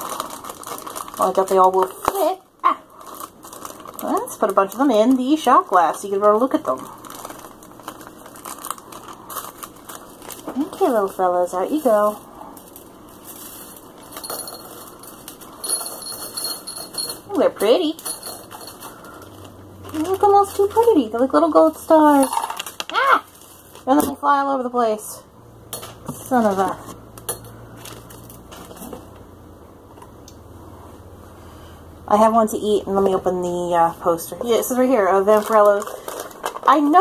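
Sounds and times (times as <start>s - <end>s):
low steady hum: 0.0s - 37.0s
candies clinking in a shot glass: 13.4s - 19.0s.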